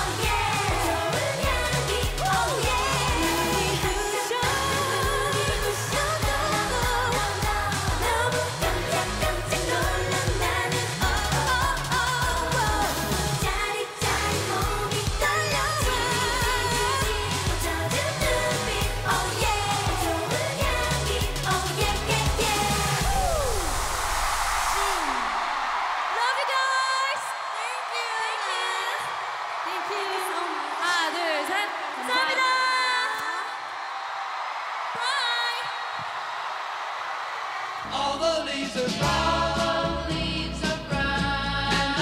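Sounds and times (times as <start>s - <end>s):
pop backing track with steady beat: 0.0s - 23.2s
female group singing pop song: 0.0s - 23.6s, 38.2s - 42.0s.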